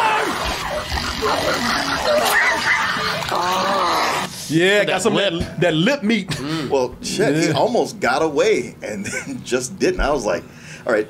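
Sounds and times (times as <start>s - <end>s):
creatures chirping and squealing: 0.0s - 4.4s
man crying out: 3.3s - 4.3s.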